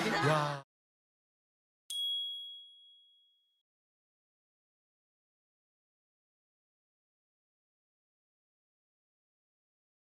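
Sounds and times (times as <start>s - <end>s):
high bright chime: 1.9s - 3.6s.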